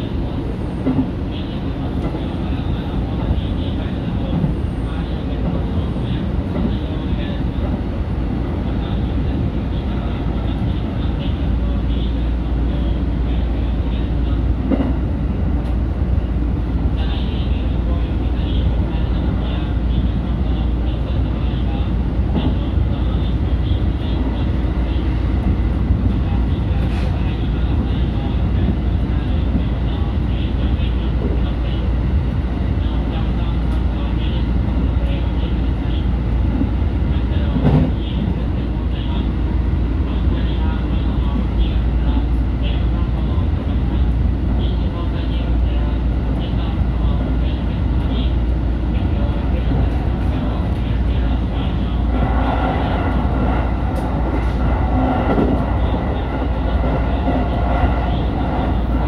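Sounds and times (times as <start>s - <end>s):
train wheels rumbling on rail: 0.0s - 59.0s
train clunk: 37.5s - 38.0s.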